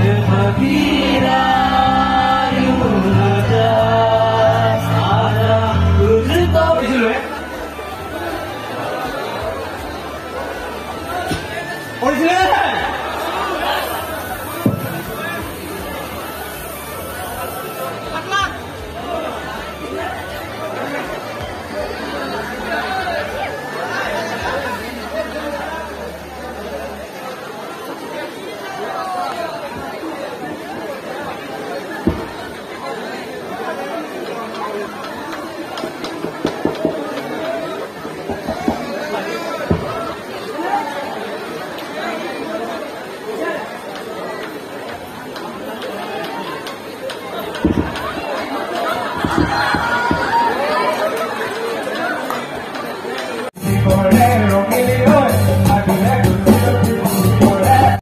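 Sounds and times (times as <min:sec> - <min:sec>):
chatter of people: 0:00.0 - 0:58.0
people talking: 0:00.0 - 0:58.0.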